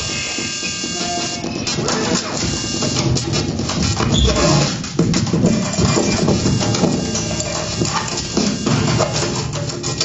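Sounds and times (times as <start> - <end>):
electroacoustic improvised music: 0.0 - 10.0.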